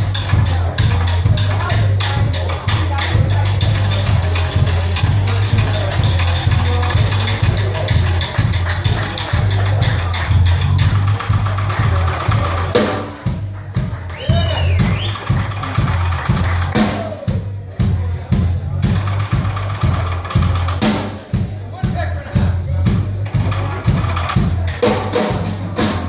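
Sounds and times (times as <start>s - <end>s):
blues band jamming: 0.0s - 26.0s.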